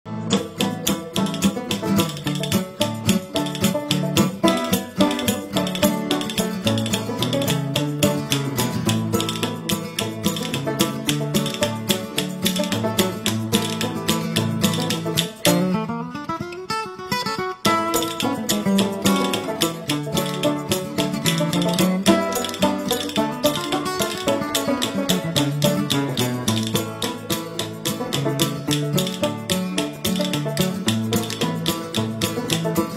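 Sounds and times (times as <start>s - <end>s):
fast-picked acoustic guitar: 0.1s - 32.9s.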